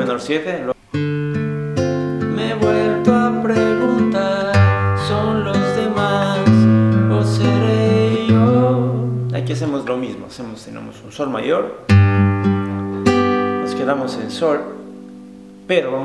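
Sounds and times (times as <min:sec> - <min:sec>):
classical guitar fingerpicking chords: 0:00.9 - 0:11.2, 0:11.8 - 0:15.6.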